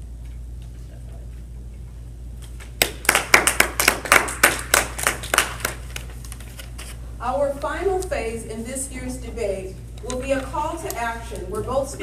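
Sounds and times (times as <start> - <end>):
hand clapping: 2.6 - 6.2.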